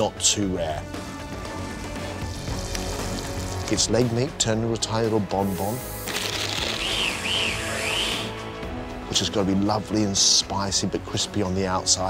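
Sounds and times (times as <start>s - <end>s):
electric chopper whirring: 6.1s - 8.3s.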